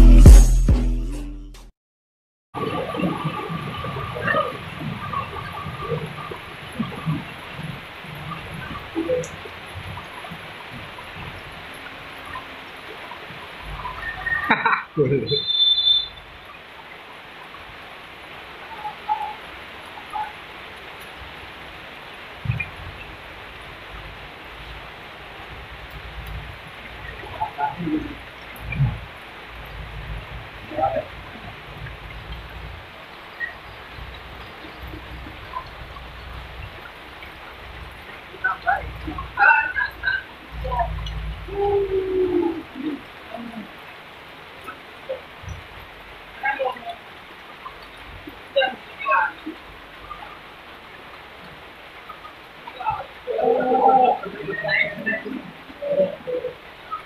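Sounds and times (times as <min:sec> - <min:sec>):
wind rumbling on microphone: 0:02.6 - 0:15.2, 0:21.1 - 0:46.3
steady rain hiss: 0:02.6 - 0:57.0
distant calls: 0:03.6 - 0:17.6, 0:18.3 - 0:21.1, 0:26.6 - 0:45.8.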